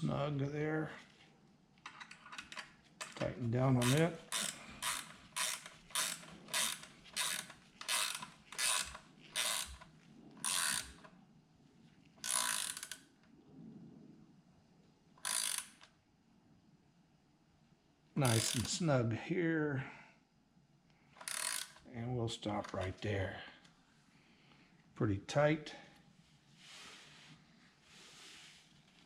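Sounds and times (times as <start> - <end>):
hand ratchet clicking: 3.8 - 11.1, 12.2 - 13.0, 15.2 - 15.9, 18.2 - 18.8, 21.2 - 21.8.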